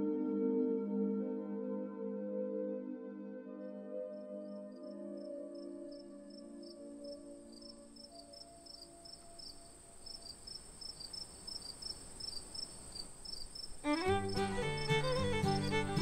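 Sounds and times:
soft ambient music chord: 0:00.0 - 0:10.0
crickets chirping: 0:04.8 - 0:16.0
music track: 0:13.8 - 0:16.0.

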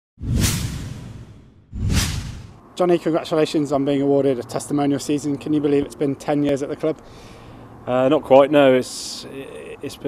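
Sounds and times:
whoosh with low rumble and hiss: 0:00.2 - 0:02.6.

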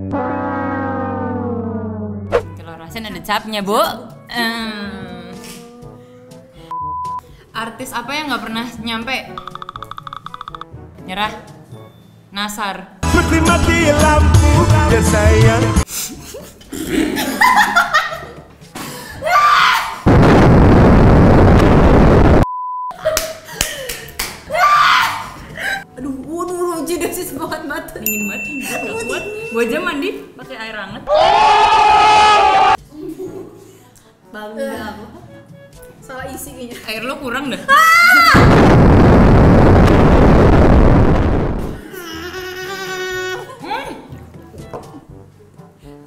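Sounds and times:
explosion roar: 0:00.0 - 0:02.4, 0:20.1 - 0:22.4, 0:38.4 - 0:41.8
women laughing: 0:16.0 - 0:18.4, 0:23.0 - 0:25.8.

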